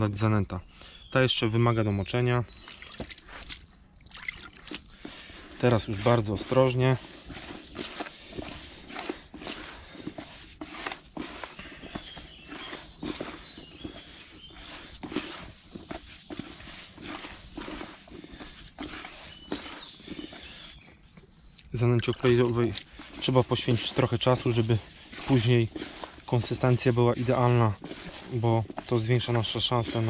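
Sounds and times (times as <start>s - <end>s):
hands kneading damp groundbait: 2.5s - 30.0s
water being added: 2.6s - 13.3s, 13.9s - 20.6s, 22.1s - 30.0s.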